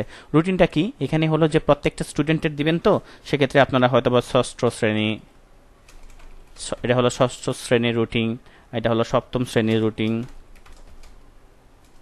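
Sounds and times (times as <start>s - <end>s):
keyboard typing: 5.8s - 6.8s, 9.6s - 11.2s.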